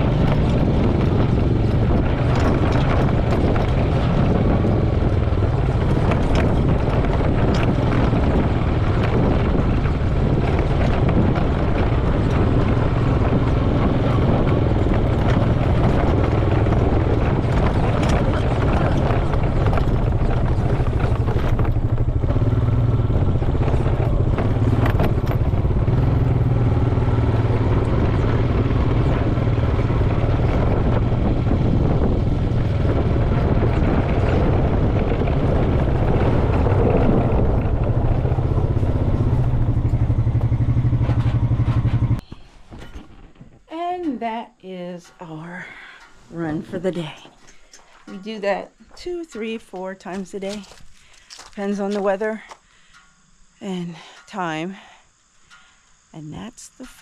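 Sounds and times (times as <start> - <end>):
atv engine running: 0.0 - 57.0.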